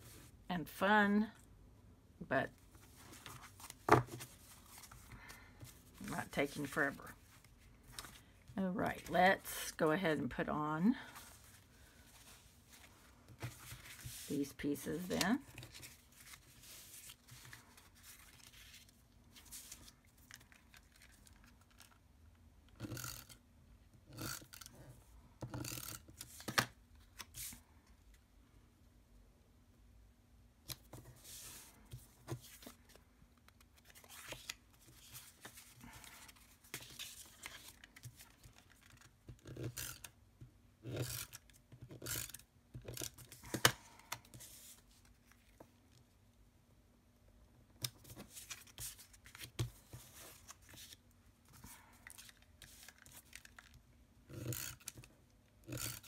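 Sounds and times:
paper rustling: 11.2s - 14.3s, 15.0s - 21.8s.

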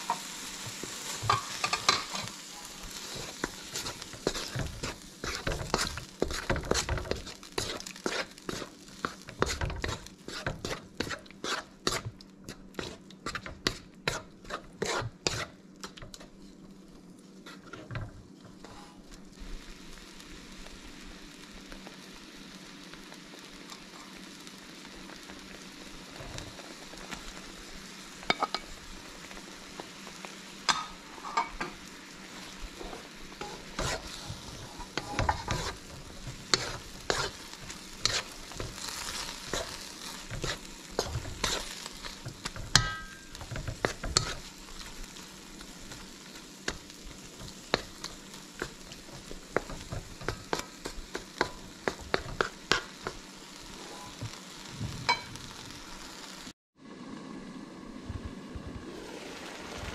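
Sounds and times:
spatula scraping and knocking pan: 0.0s - 16.4s, 32.8s - 55.6s
sauce sizzling in a wok: 0.0s - 59.9s.

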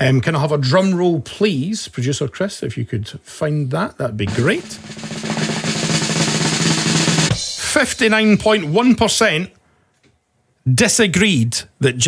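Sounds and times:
snare drum roll: 4.3s - 8.9s.

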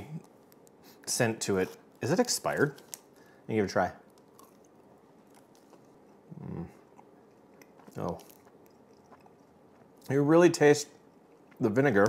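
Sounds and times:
person chewing: 4.1s - 10.1s, 10.9s - 12.0s
person humming: 6.3s - 6.8s.

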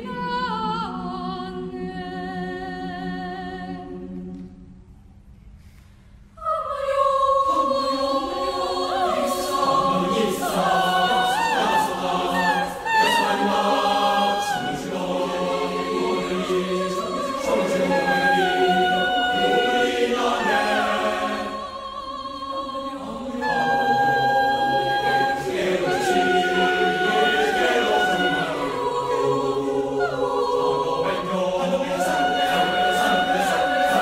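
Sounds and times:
choir singing a cappella: 0.0s - 4.8s, 6.4s - 34.0s.

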